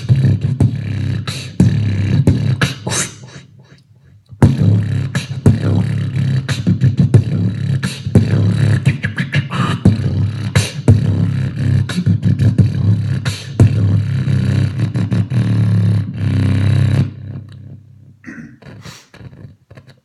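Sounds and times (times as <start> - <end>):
beatboxing through speakers: 0.0 - 20.0.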